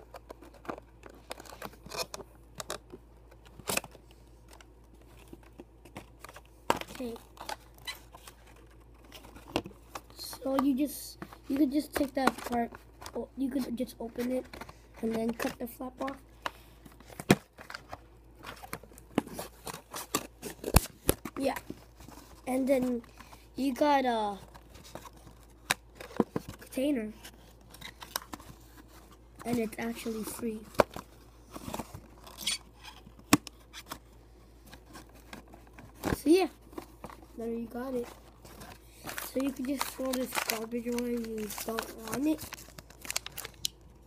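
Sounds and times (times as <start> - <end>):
plastic packaging crinkling: 0.0 - 13.2, 14.1 - 44.0
plastic packaging clicks and taps: 9.5 - 13.2.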